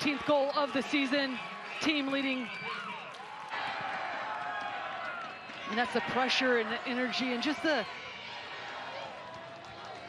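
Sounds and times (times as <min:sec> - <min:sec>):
stadium background hum: 0:00.0 - 0:10.0.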